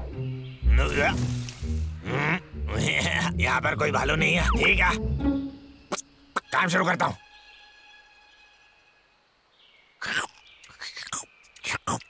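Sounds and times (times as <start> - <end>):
faint steady background tones: 0.0 - 12.0.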